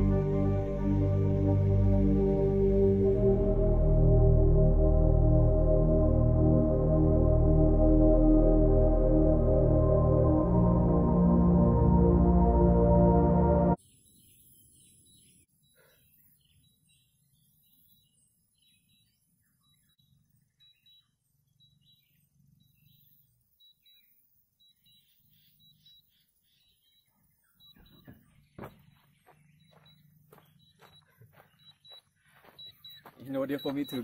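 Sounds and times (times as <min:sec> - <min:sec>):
faint bird chirps: 0:13.8 - 0:34.0
footsteps on gravel: 0:27.9 - 0:34.0.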